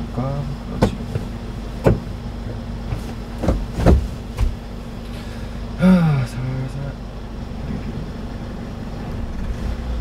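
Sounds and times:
truck engine idling: 0.0s - 10.0s.

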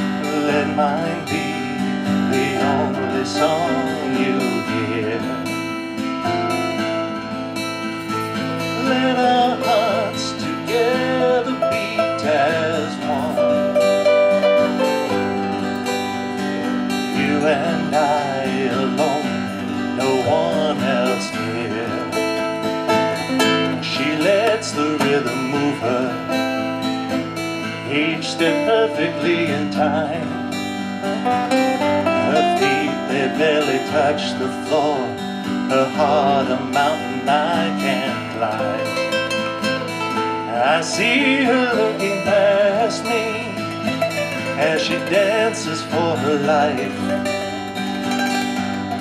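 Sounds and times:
classical guitar playing: 0.0s - 49.0s
wavering melody line: 46.6s - 49.0s.

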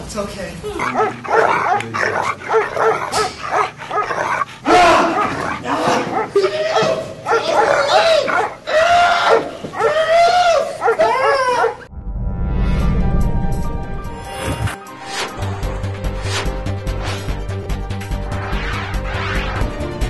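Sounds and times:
dog barking and yelping: 0.7s - 11.9s.

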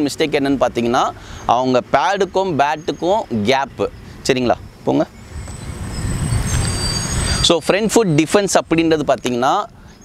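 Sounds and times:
passing vehicle rumble: 0.0s - 10.0s
faint high whistling tones: 4.6s - 10.0s.

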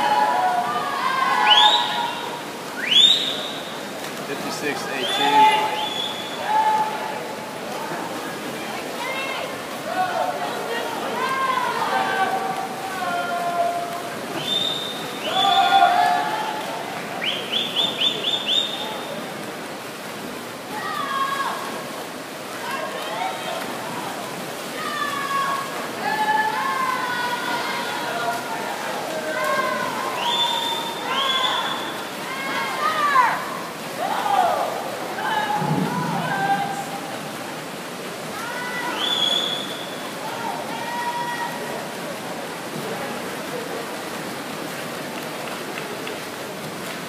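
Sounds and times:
spectators shouting cheers: 0.0s - 2.4s, 9.9s - 18.8s, 22.7s - 37.0s
pool hall noise hiss: 0.0s - 47.0s
quick rising whistles: 2.8s - 3.7s, 14.4s - 15.4s, 39.0s - 40.0s.

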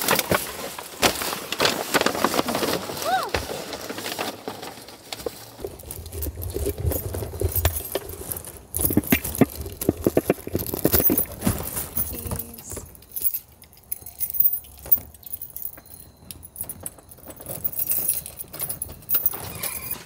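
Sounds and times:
bags and clothing rustling: 0.0s - 20.0s
keys jangling: 5.6s - 20.0s.

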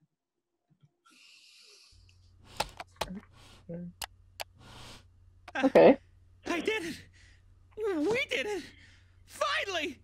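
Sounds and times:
breathy wheezy hiss: 1.1s - 2.1s
low steady hum: 2.0s - 10.0s
sharp clicks: 4.0s - 4.6s.

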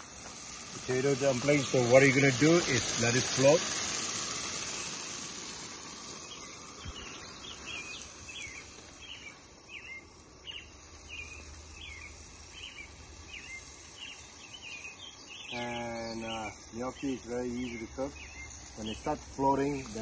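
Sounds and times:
camp stove burner hissing: 0.0s - 20.0s
songbird chirping: 6.2s - 20.0s.

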